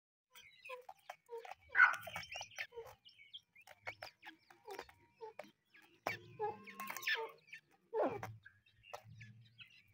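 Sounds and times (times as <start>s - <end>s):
birds clucking and chirping: 0.3s - 9.9s.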